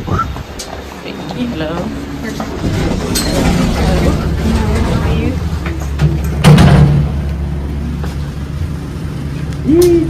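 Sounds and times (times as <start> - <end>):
lift humming: 0.0 - 10.0
loud thump: 6.0 - 7.2.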